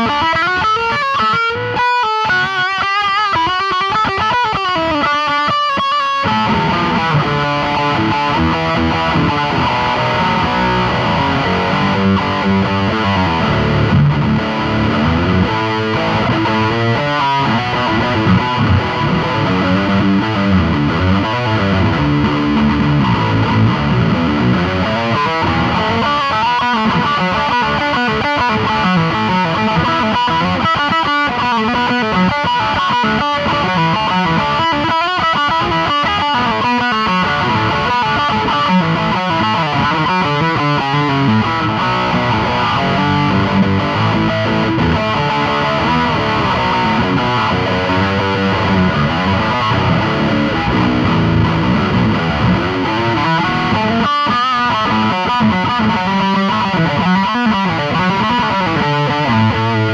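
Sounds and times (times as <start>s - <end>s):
distorted electric guitar: 0.0s - 59.9s.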